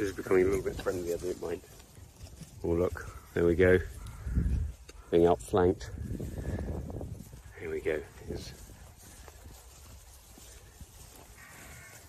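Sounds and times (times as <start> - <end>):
faint cow call: 11.1 - 12.0.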